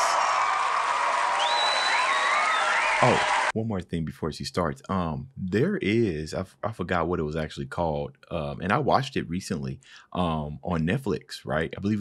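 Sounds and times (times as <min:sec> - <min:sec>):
studio audience applauding: 0:00.0 - 0:03.5.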